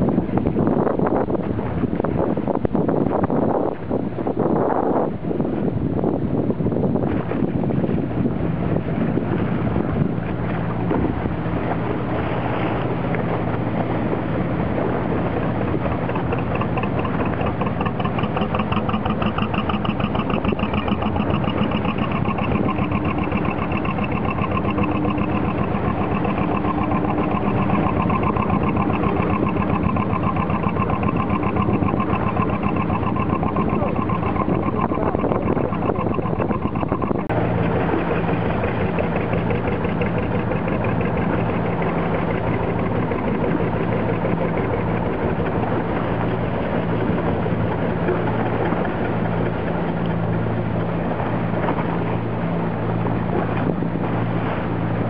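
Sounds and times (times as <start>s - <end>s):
boat engine running: 0.0s - 55.0s.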